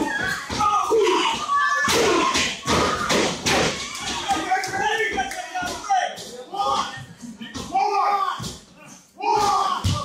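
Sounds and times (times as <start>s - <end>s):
crowd shouting: 0.0s - 5.2s
wrestlers thudding and smacking: 0.0s - 10.0s.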